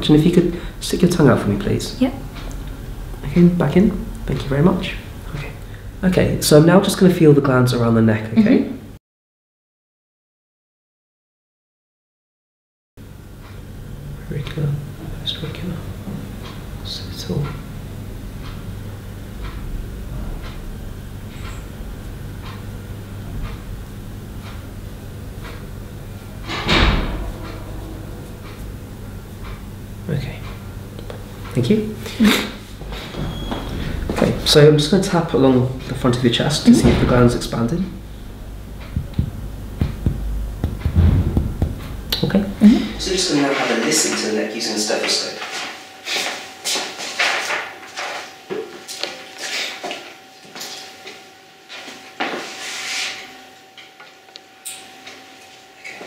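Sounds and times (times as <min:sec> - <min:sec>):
muffled thump with rustling: 0:38.9 - 0:42.0
footsteps: 0:38.9 - 0:42.2.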